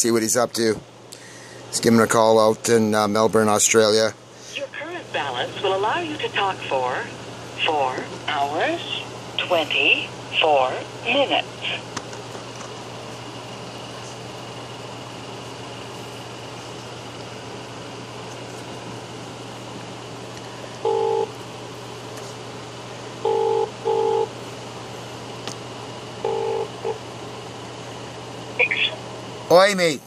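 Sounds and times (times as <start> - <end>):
phone line hum: 14.4 - 21.6, 22.9 - 24.8, 26.0 - 29.1
phone ringback tone: 20.8 - 21.3, 23.2 - 24.3, 26.2 - 27.0.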